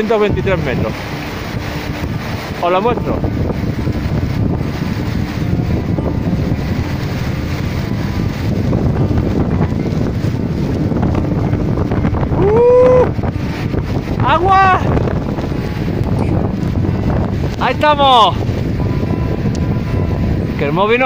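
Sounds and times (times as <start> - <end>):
waterfall roaring: 0.0 - 21.0
wind buffeting microphone: 0.0 - 21.0
man calling out: 14.2 - 14.9.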